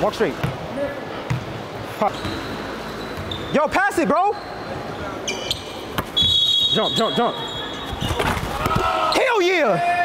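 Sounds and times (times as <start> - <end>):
gym background noise: 0.0 - 10.0.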